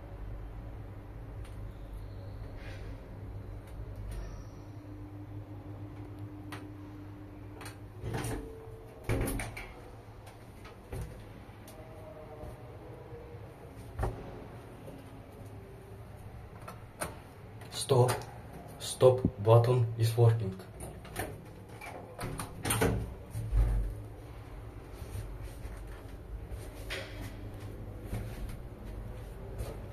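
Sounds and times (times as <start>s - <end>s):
elevator door clunk: 7.5s - 11.3s, 20.6s - 24.0s.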